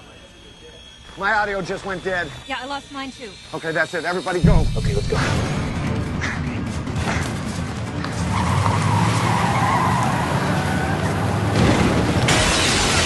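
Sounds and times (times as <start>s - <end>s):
dramatic music: 4.4s - 13.0s
tyres squealing: 8.0s - 11.4s.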